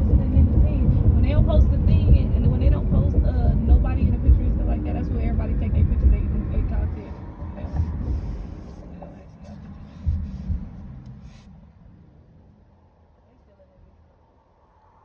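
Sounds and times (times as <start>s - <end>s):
car road and wind noise: 0.0s - 15.0s.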